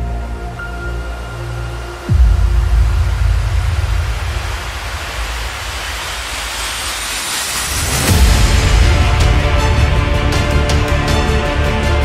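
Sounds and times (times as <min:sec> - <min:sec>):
deep bass drop: 0:00.0 - 0:12.0
low rumbling noise swell: 0:00.0 - 0:12.0.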